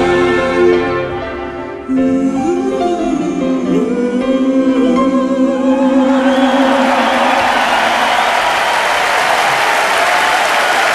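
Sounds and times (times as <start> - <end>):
audience applauding: 6.1 - 10.9.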